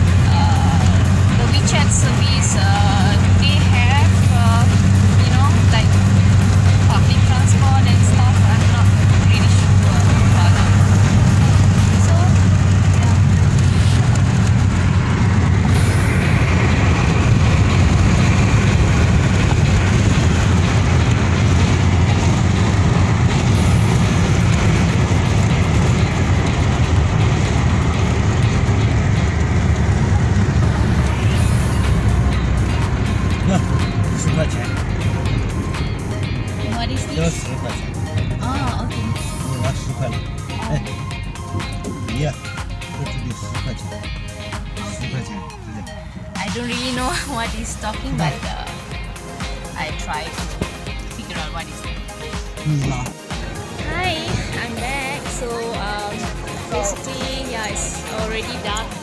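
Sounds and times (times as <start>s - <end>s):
music playing: 0.0s - 59.0s
road and engine rumble: 0.0s - 59.0s
voices: 0.2s - 14.0s, 36.2s - 49.0s, 49.7s - 59.0s.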